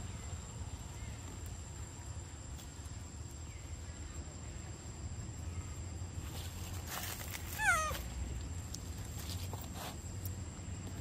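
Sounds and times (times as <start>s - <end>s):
monkey squeaky call: 7.6s - 8.0s.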